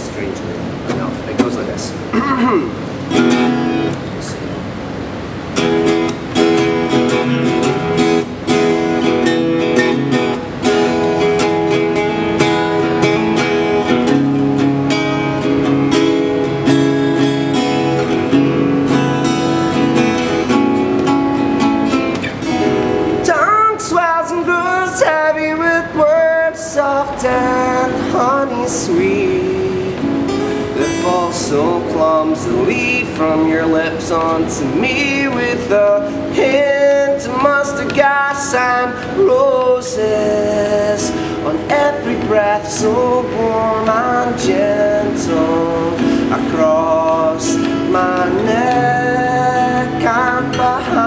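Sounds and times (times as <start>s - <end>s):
acoustic guitar strumming chords: 0.0s - 51.0s
man singing: 23.2s - 51.0s.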